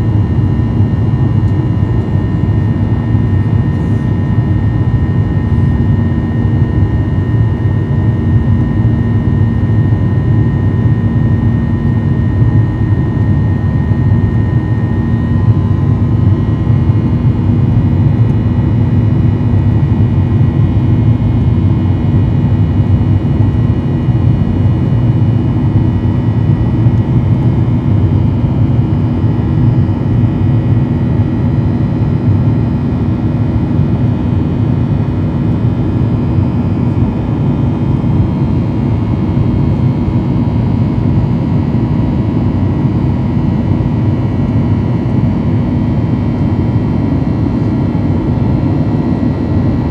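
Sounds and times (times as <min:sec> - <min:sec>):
jet engines and airflow roar: 0:00.0 - 0:49.9.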